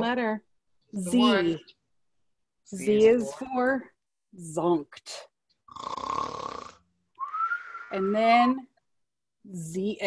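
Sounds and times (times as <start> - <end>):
person mock snoring: 5.7 - 6.8
whistled breath: 7.2 - 8.1.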